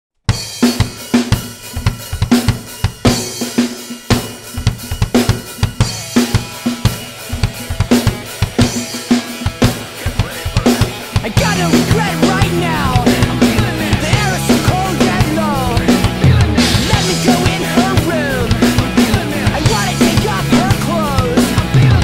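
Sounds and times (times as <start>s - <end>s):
drums playing fast rock beat: 0.2s - 22.0s.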